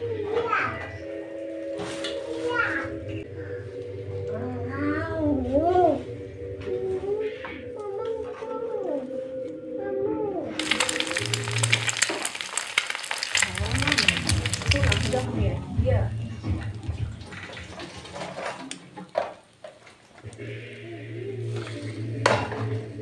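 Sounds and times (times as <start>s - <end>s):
bread sizzling in sandwich maker: 10.6s - 15.3s.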